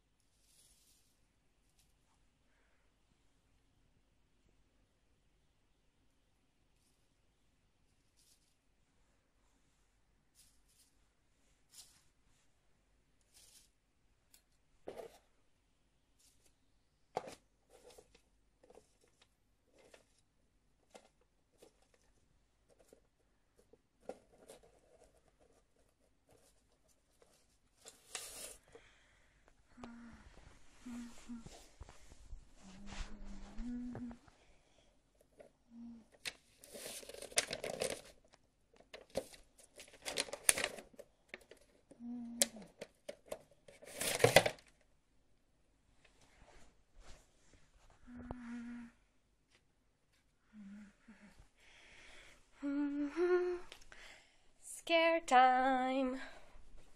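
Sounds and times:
paper rustle: 0:11.6 - 0:12.2, 0:13.3 - 0:13.8, 0:16.2 - 0:20.2, 0:20.8 - 0:28.8, 0:36.2 - 0:41.9, 0:43.0 - 0:44.8
person humming: 0:29.7 - 0:31.6, 0:32.6 - 0:34.2, 0:42.0 - 0:42.7, 0:48.1 - 0:49.0, 0:52.6 - 0:53.8.

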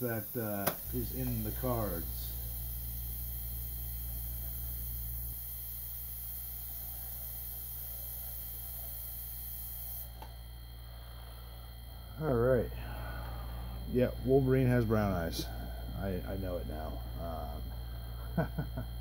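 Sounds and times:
airbrush spraying hiss: 0:00.0 - 0:11.7
steady low hum: 0:00.0 - 0:19.0.

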